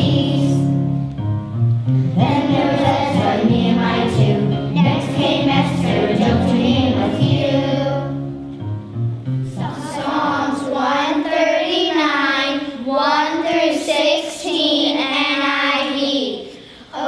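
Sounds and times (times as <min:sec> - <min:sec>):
children singing in unison: 0:00.0 - 0:00.8, 0:02.2 - 0:08.2, 0:09.6 - 0:16.0.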